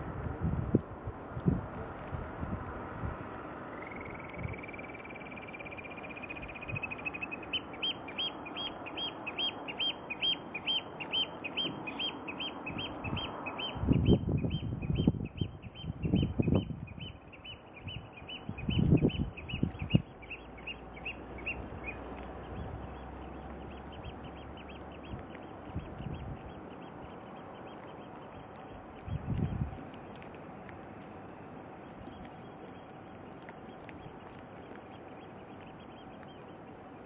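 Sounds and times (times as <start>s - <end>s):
wind buffeting microphone: 0.0s - 4.7s, 11.5s - 20.4s, 21.0s - 30.8s
oystercatcher piping calls: 3.8s - 22.0s.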